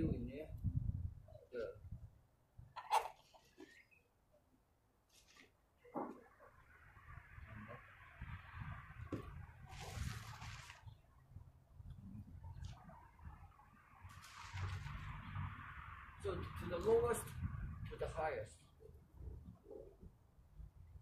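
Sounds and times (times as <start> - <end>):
low rumble: 13.2 - 18.0.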